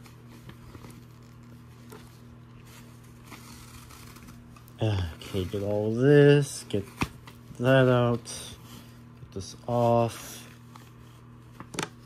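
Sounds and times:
mini fridge humming: 0:00.0 - 0:12.0.

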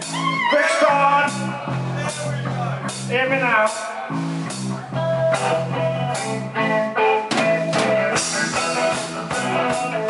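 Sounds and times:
bass line: 0:00.0 - 0:10.0
live rock band playing: 0:00.0 - 0:10.0
drum hits: 0:07.3 - 0:10.0.

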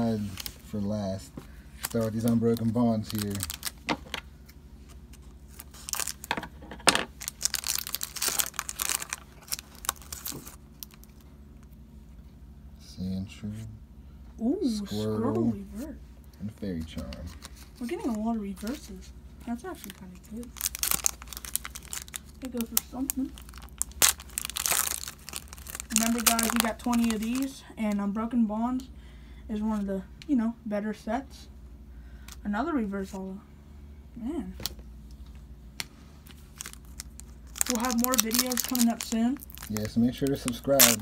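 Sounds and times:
foil wrapper crackling: 0:01.8 - 0:04.2, 0:05.0 - 0:06.5, 0:07.1 - 0:11.3, 0:19.8 - 0:28.0, 0:36.2 - 0:41.0.

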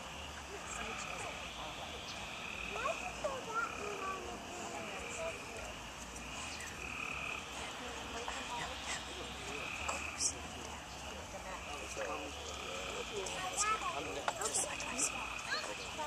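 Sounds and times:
animals trilling at night: 0:00.0 - 0:16.0.

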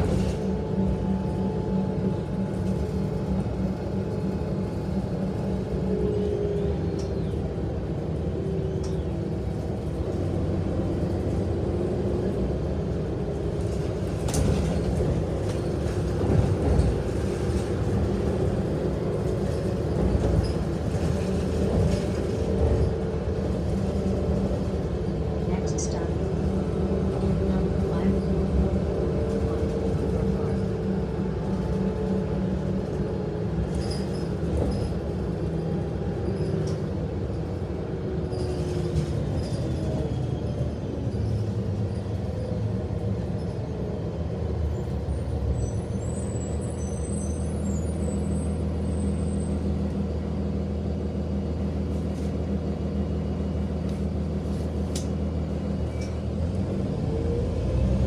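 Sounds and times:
bus body rattling: 0:00.0 - 0:57.8
bus engine and road noise: 0:00.0 - 0:58.0.

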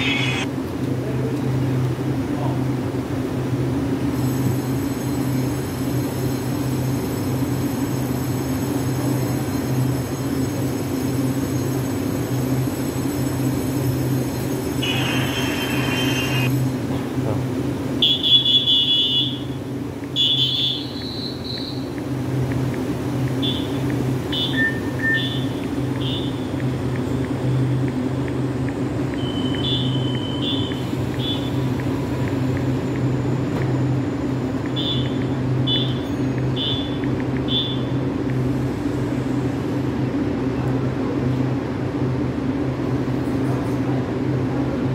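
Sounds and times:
high-pitched electronic beeps: 0:00.0 - 0:00.5, 0:08.4 - 0:16.6, 0:23.4 - 0:27.8
train electrical hum: 0:00.0 - 0:44.9.

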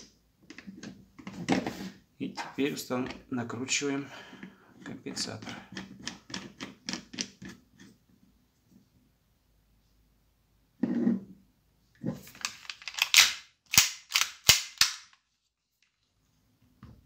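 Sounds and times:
hard plastic parts clacking: 0:05.1 - 0:07.6, 0:12.1 - 0:15.2.

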